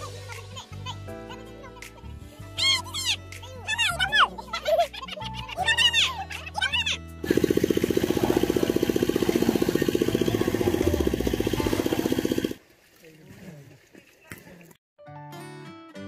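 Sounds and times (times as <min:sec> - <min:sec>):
woman laughing: 0:04.2 - 0:06.3
rapid pulsing sound effect: 0:07.2 - 0:12.6.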